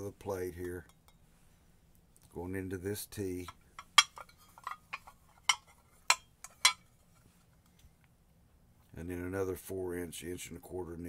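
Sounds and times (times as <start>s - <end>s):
pipe fittings clinking: 3.3s - 7.2s.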